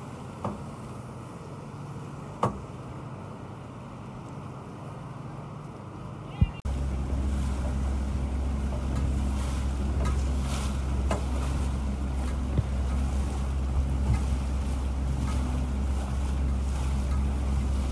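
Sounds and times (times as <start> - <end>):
motorboat engine droning: 0.0 - 17.9
water noise: 0.0 - 17.9
wind buffeting microphone: 6.4 - 17.9.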